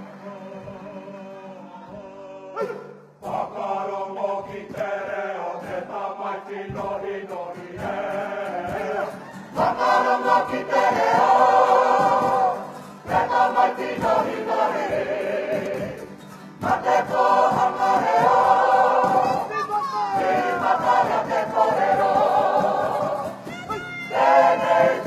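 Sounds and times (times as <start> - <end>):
group singing in unison: 0.0 - 25.0.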